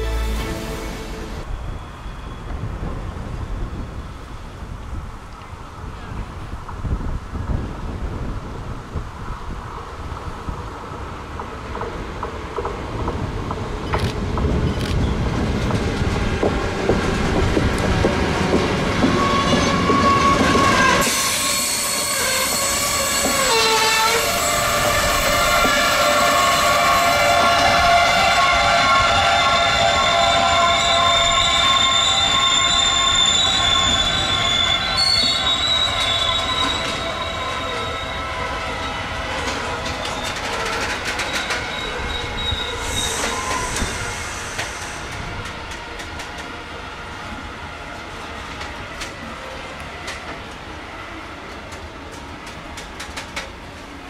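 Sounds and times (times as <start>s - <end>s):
train wheels squealing on rails: 0.0s - 4.8s, 13.8s - 50.5s
freight train rolling: 0.0s - 54.0s.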